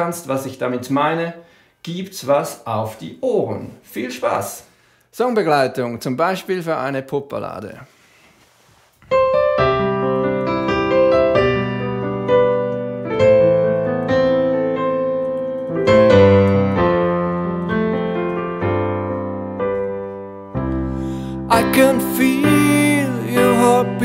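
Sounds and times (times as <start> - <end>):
piano ballad chords and bass: 9.1 - 24.0.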